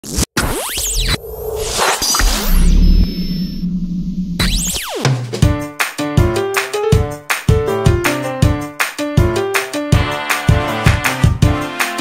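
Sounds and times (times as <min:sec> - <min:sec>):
low synthetic hum: 0:01.2 - 0:04.8.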